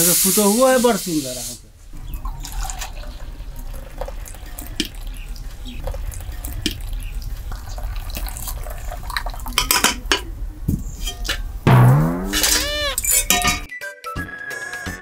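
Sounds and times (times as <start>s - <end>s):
tea pouring and splashing: 2.0s - 9.7s.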